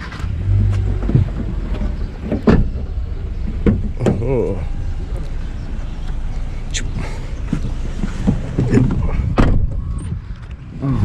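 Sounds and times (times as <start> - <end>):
knocks and bumps in a car: 0.5 - 6.2, 7.1 - 10.6.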